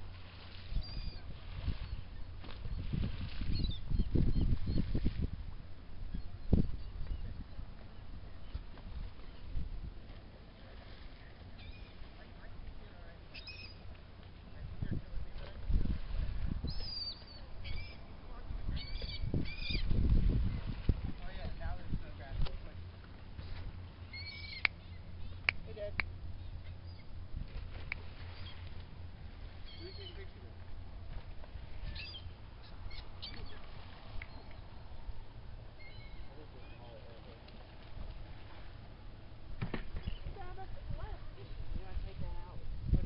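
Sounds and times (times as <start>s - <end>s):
gulls calling: 13.3s - 13.9s, 16.6s - 18.1s, 18.7s - 19.9s, 23.9s - 27.2s, 28.0s - 28.8s, 29.5s - 30.6s, 31.7s - 34.9s, 35.7s - 37.2s
steady low rumble: 17.4s - 36.5s.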